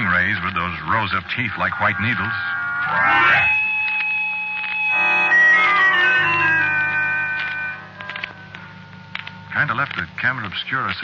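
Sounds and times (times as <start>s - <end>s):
organ music: 0.0s - 10.9s.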